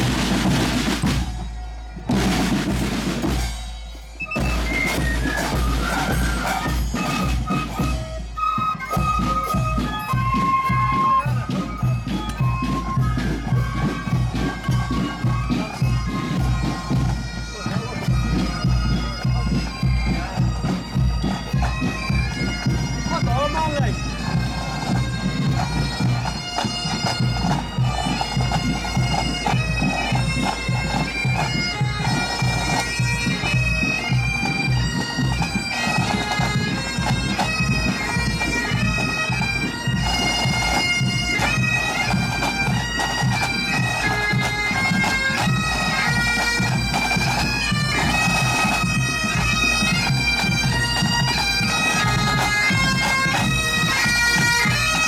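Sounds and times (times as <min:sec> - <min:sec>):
bagpipes playing a tune: 0:00.0 - 0:55.0
marching drums: 0:00.0 - 0:55.0.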